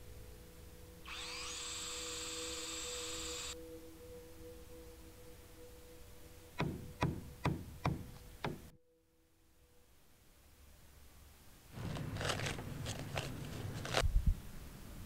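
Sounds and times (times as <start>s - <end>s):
cordless drill whining: 1.0s - 3.6s
hammer blows on wood: 6.6s - 8.7s.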